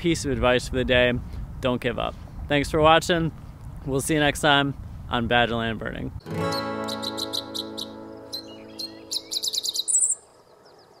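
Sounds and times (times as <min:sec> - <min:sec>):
strummed guitar chord ringing: 0:06.2 - 0:09.4
high bird chirps and trill: 0:06.4 - 0:11.0.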